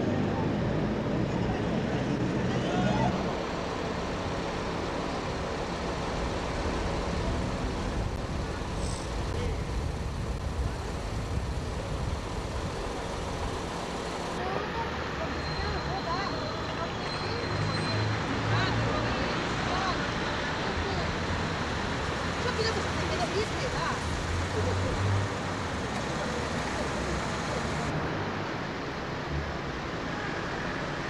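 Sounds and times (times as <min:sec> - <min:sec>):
city street traffic: 0:00.0 - 0:31.0.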